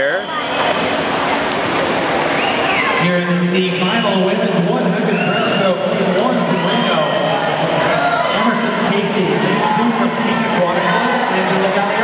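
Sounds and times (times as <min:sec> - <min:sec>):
spectators shouting and cheering: 0:02.0 - 0:12.0.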